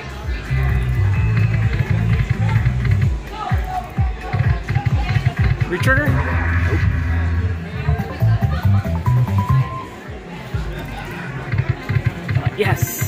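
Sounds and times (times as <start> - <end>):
slot machine music with bass line: 5.4 - 10.2.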